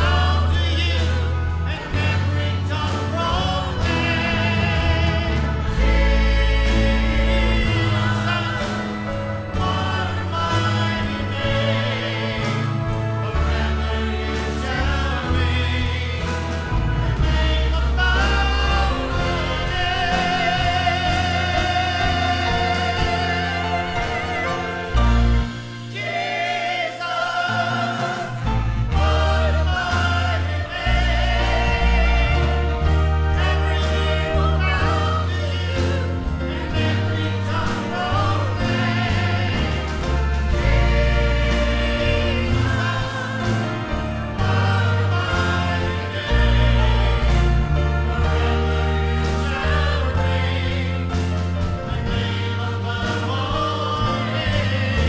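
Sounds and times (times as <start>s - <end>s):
man singing lead: 0.0s - 25.1s
choir singing: 0.0s - 55.0s
instrumental backing with deep bass: 0.0s - 55.0s
lead singer with vibrato: 0.0s - 55.0s.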